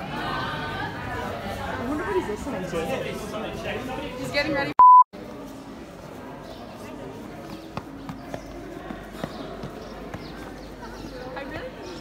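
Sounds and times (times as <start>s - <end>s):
footsteps on stone paving: 7.0s - 11.8s.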